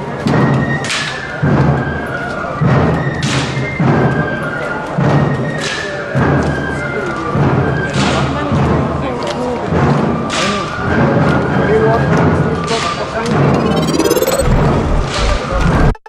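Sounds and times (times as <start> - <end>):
bass drum beat: 14.4 - 16.0.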